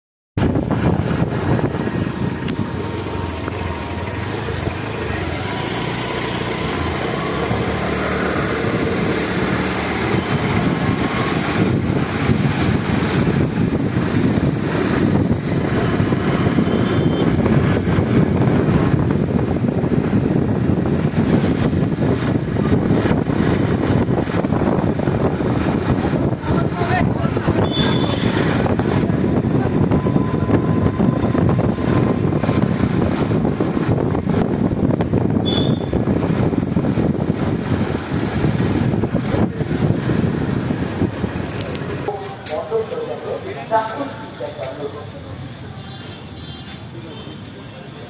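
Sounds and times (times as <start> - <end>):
motorbike engine: 0.5 - 42.3.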